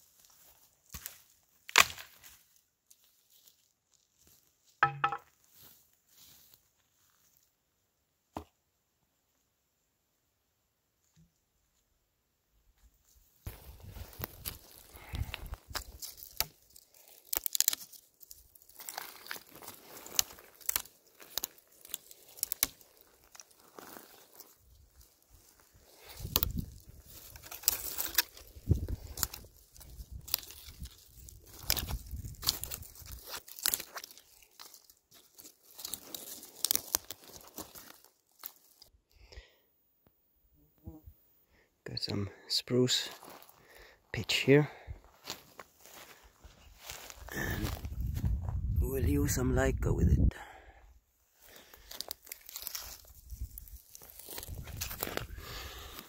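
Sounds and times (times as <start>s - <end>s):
dry twigs crunching and rustling: 0.0s - 7.5s, 13.0s - 39.6s, 43.0s - 49.4s, 51.2s - 56.0s.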